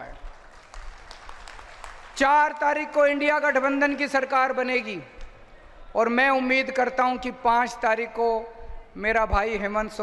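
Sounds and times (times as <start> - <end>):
crowd applauding: 0.0 - 3.0
man speaking: 2.2 - 5.1, 5.9 - 10.0.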